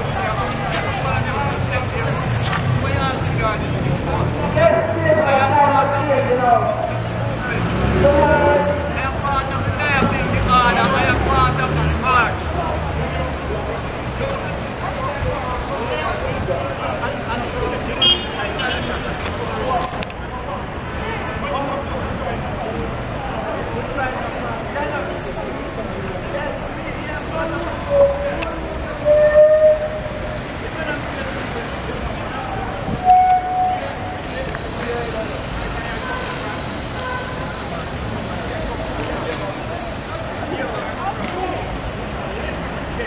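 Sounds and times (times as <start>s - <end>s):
men talking heatedly: 0.0s - 43.0s
street chatter: 0.0s - 43.0s
traffic: 0.0s - 43.0s
horn long steady note: 29.0s - 30.2s, 33.0s - 34.2s.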